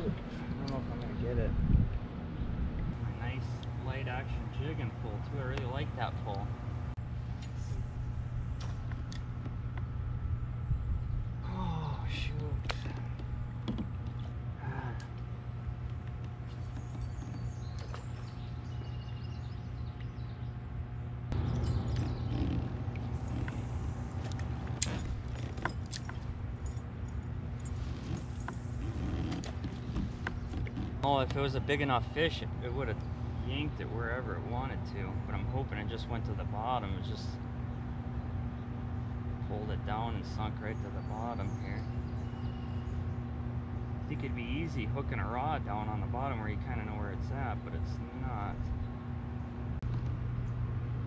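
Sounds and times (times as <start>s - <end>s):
electrical hum: 0.0s - 51.0s.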